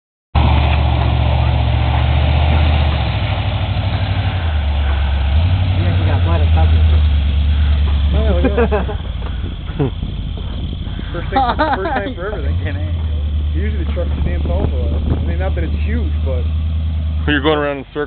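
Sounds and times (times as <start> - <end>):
truck engine droning: 0.4 - 18.0
voices: 4.8 - 18.0.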